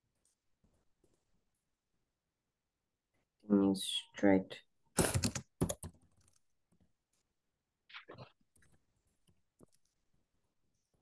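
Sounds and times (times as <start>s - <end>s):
typing on computer keyboard: 5.0s - 6.4s.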